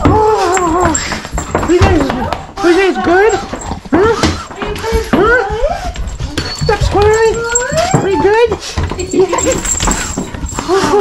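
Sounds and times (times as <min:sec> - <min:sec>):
dogs whining and yowling: 0:00.0 - 0:01.5.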